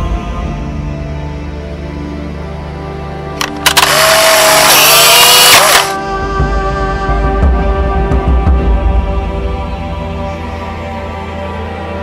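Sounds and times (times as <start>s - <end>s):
dark soundtrack music: 0.0s - 12.0s
sharp clicks: 3.4s - 6.0s.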